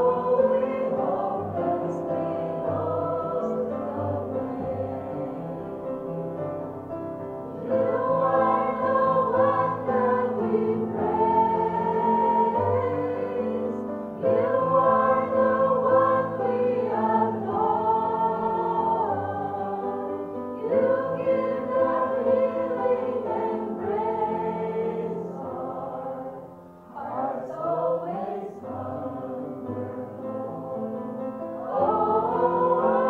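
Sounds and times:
women singing worship song: 0:00.0 - 0:05.5, 0:07.6 - 0:26.4, 0:27.0 - 0:33.0.

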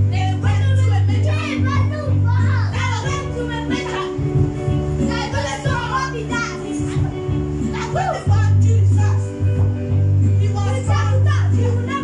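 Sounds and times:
electronic keyboard chords: 0:00.0 - 0:12.0
children singing and calling: 0:00.3 - 0:09.0.

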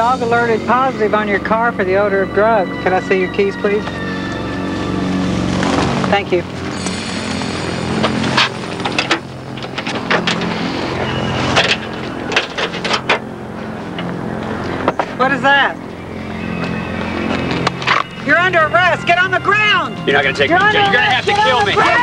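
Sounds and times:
vehicle engine idling: 0:00.0 - 0:22.0.

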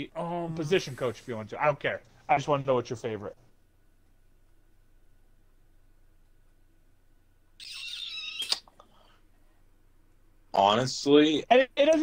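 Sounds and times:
high wavering squeak: 0:07.6 - 0:08.6.

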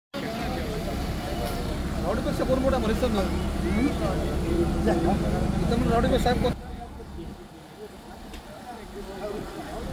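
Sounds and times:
diesel engine idling: 0:00.2 - 0:09.9
people talking faintly: 0:00.2 - 0:09.9.

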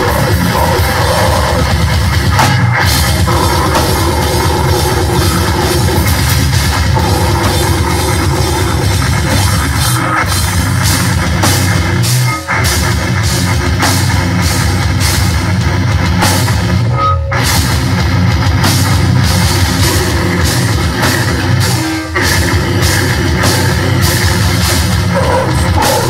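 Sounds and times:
metal band playing: 0:00.0 - 0:26.0.

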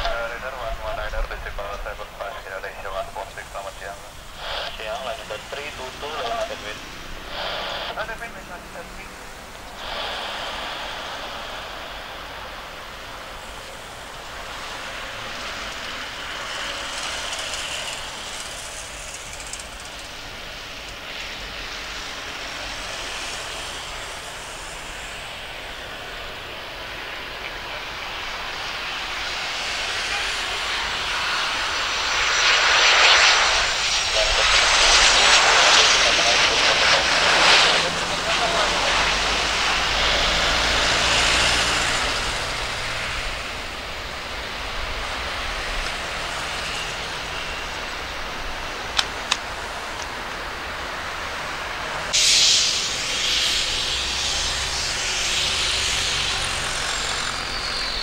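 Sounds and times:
high jet engine whine: 0:00.0 - 0:58.0
jet airliner landing: 0:00.0 - 0:58.0.

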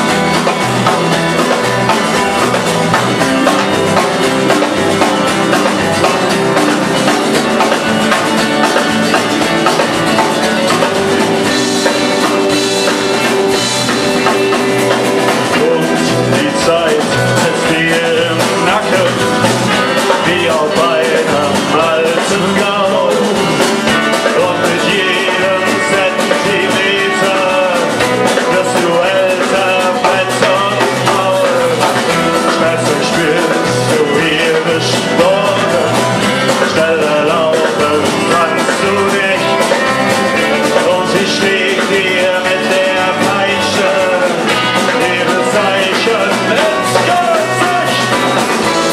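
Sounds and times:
person singing: 0:00.0 - 0:48.9
rock band playing: 0:00.0 - 0:48.9.

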